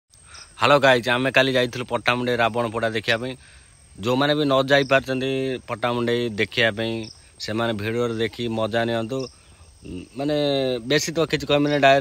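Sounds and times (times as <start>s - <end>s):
man talking: 0.4s - 12.0s.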